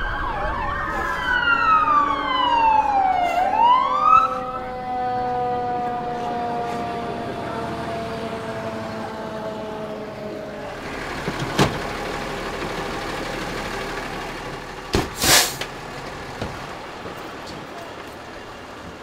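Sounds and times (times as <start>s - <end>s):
siren winding down: 0.0s - 10.8s
fire engine idling: 0.0s - 19.0s.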